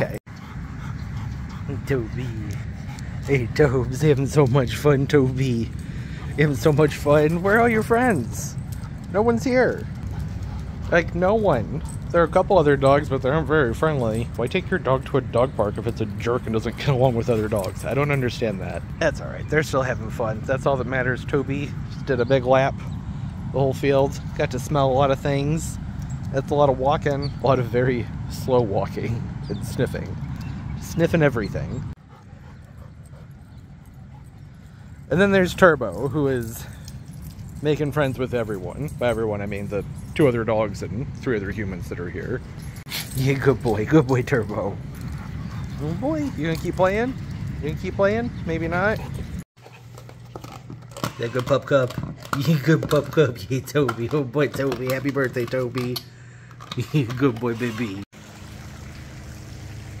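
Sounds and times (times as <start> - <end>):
even outdoor hiss: 0.0 - 49.8, 50.9 - 60.0
dog panting: 0.2 - 12.4, 31.9 - 35.1, 44.9 - 46.8, 48.7 - 50.2.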